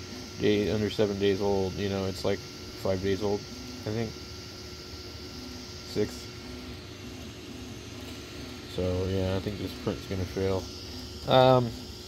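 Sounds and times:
fan hum: 0:00.0 - 0:12.0
stepper motor pitched tones: 0:00.0 - 0:12.0.

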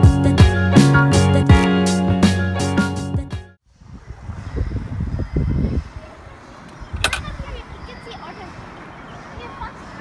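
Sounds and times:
wind buffeting microphone: 0:03.7 - 0:10.0
sharp click: 0:06.7 - 0:07.3.

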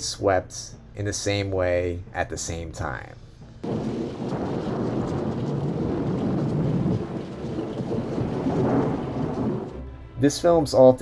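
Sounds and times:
dense rumbling roar: 0:03.6 - 0:09.9.

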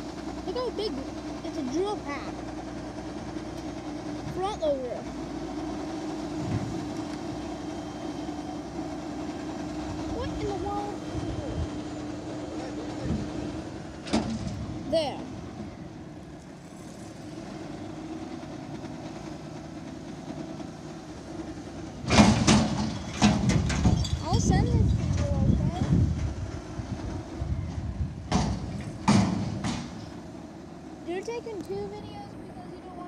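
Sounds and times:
garbage truck engine and hydraulics: 0:00.0 - 0:33.0
loud knocks and bangs of container: 0:28.3 - 0:30.0.

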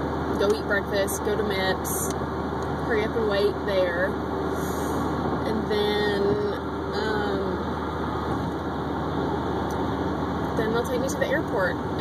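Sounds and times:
car cabin road and engine noise: 0:00.0 - 0:12.0
woman speaking: 0:00.4 - 0:02.1, 0:02.9 - 0:04.2, 0:05.5 - 0:07.7, 0:10.6 - 0:12.0.

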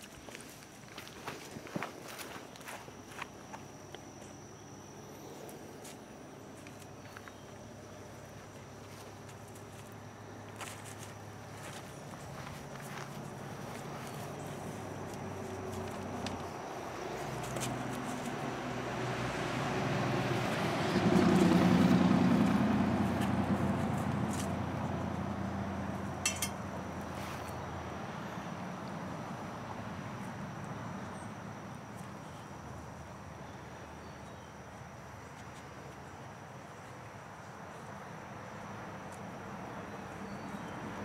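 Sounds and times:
vehicle engine passing by: 0:12.3 - 0:31.5.

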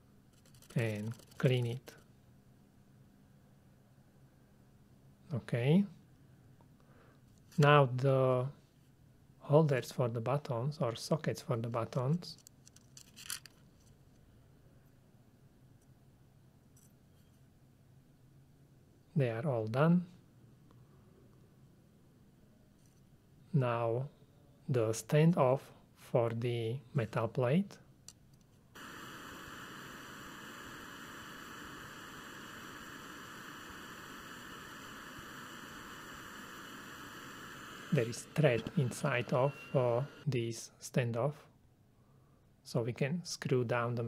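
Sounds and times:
hot air gun hissing: 0:28.8 - 0:40.3
low hum: 0:28.8 - 0:40.3.

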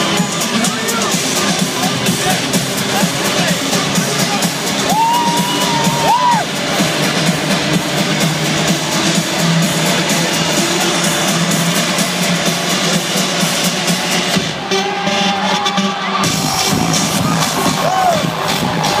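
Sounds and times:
loud house music: 0:00.0 - 0:19.0
crowd cheering: 0:04.7 - 0:06.8, 0:14.4 - 0:19.0.

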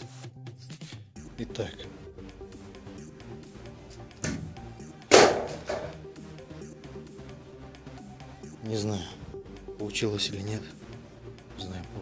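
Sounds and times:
background music: 0:00.0 - 0:12.0
board knocking: 0:04.2 - 0:06.0.

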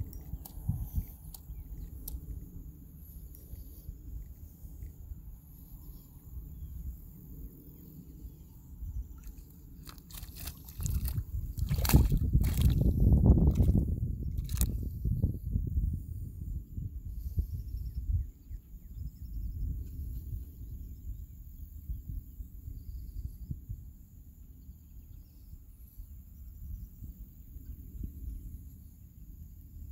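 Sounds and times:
insects chirping: 0:00.0 - 0:19.8
water splashing and sloshing: 0:09.0 - 0:14.7.

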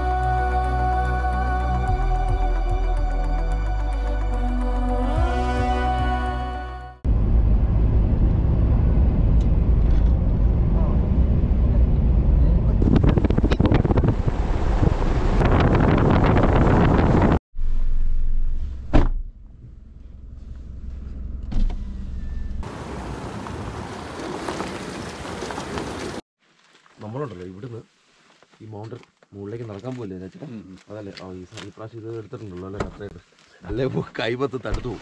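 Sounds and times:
truck engine rumble: 0:15.7 - 0:26.2
gravel crackling under tyres: 0:22.6 - 0:35.0.

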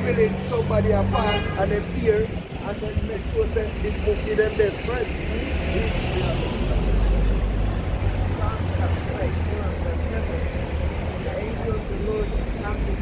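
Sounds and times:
heavy traffic rumble: 0:00.0 - 0:13.0.

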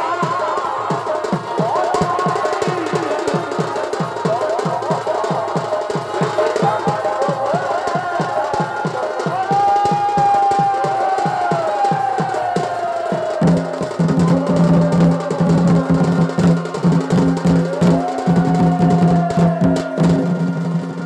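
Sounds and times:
drums beating fast rhythm: 0:00.0 - 0:21.0.

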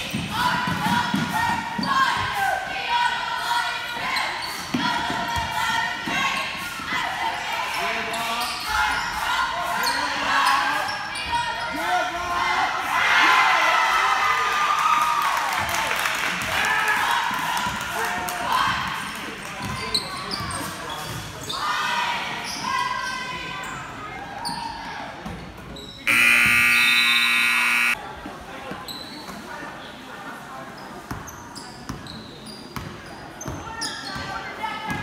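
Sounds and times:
sneaker squeaks: 0:08.1 - 0:09.2, 0:25.7 - 0:28.0, 0:28.8 - 0:29.4, 0:30.8 - 0:34.3
scoreboard horn buzz: 0:26.1 - 0:28.0.

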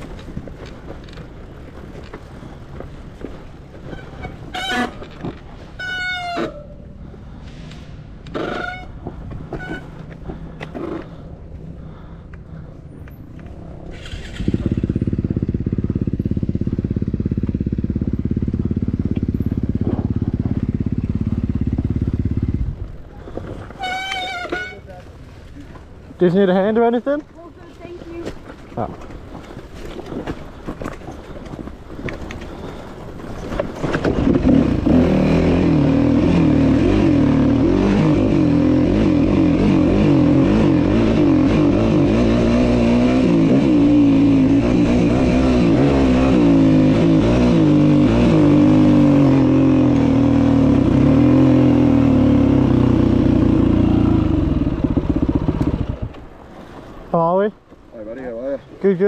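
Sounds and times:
dirt bike engine revving: 0:13.9 - 0:22.8, 0:34.2 - 0:56.1.

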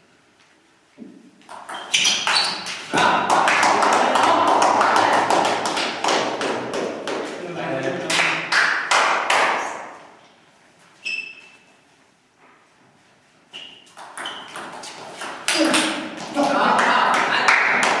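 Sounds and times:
spectators clapping: 0:02.8 - 0:07.3, 0:08.0 - 0:09.9, 0:15.4 - 0:18.0.

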